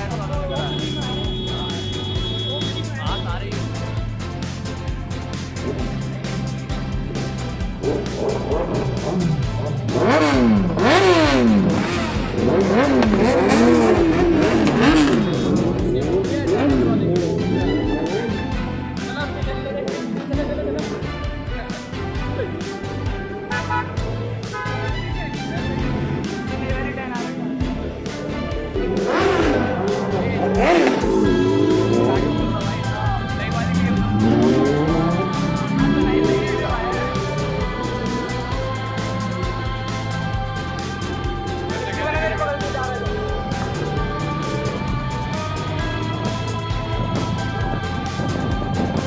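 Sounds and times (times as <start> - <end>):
background music: 0.0 - 49.0
motorbike engines revving: 0.0 - 49.0
song with singing: 7.8 - 49.0.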